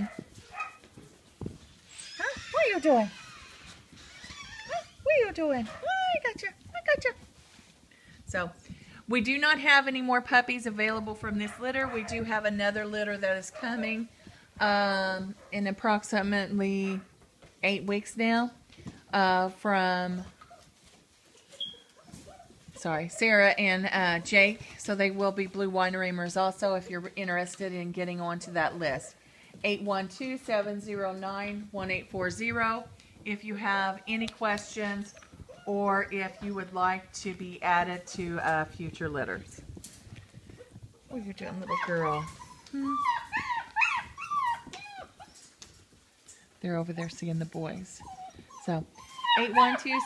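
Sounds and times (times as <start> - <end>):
soft rustles: 0.0 - 17.7, 18.6 - 50.0
puppy squeaking: 1.9 - 6.2, 21.5 - 22.5, 34.0 - 37.1, 41.2 - 45.6, 47.8 - 50.0.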